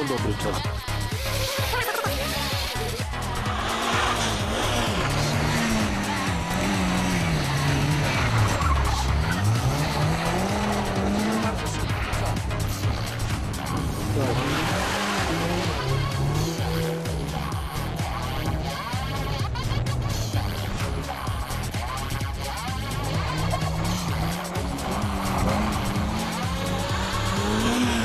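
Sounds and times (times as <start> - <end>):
car engine revving: 0.0 - 28.0.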